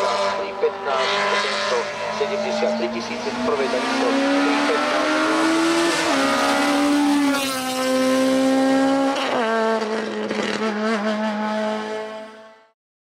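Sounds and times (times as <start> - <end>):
race car engine at full throttle: 0.0 - 12.8.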